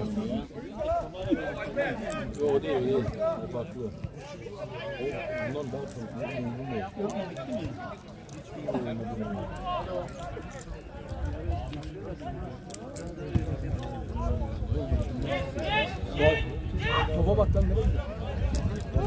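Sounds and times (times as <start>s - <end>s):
indistinct talk among spectators: 0.0s - 19.0s.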